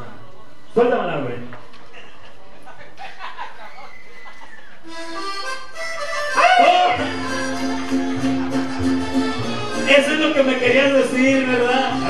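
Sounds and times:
instrumental backing track over pa: 0:04.8 - 0:12.0.

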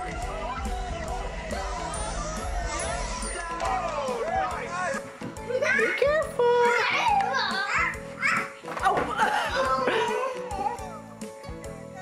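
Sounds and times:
children calling and chattering: 0:00.0 - 0:11.3
background music: 0:00.0 - 0:12.0.

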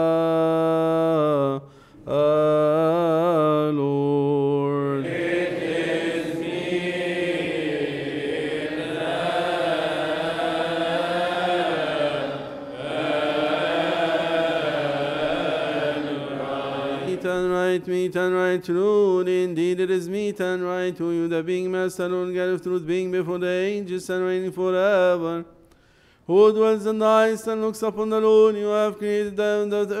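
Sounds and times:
man chanting: 0:00.0 - 0:25.5, 0:26.3 - 0:30.0
congregation chanting: 0:02.1 - 0:19.8.

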